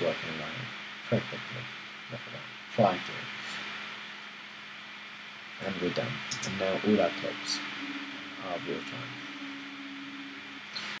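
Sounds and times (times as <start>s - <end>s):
faint low hum: 0.0s - 11.0s
steady hiss: 0.0s - 11.0s.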